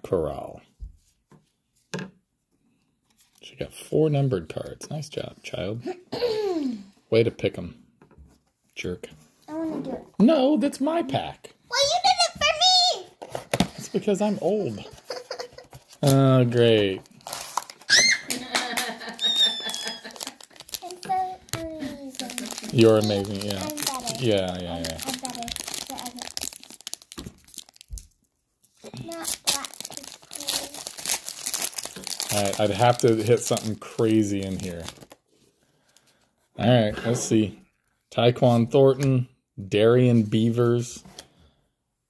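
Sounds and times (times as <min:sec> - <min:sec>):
foil pack crinkling: 0:14.9 - 0:18.1, 0:19.2 - 0:35.2
falling squeaky tone: 0:17.9 - 0:18.3, 0:19.2 - 0:20.2.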